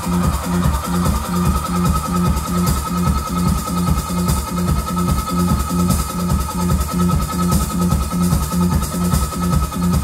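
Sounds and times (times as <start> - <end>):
band playing techno-like music: 0.0 - 10.0.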